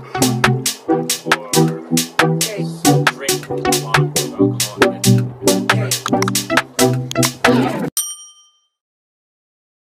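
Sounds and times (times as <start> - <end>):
bright bell ding: 8.0 - 8.8.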